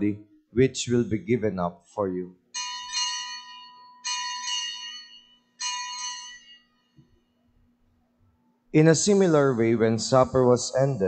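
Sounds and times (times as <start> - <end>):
bell strikes ringing: 2.6 - 7.0.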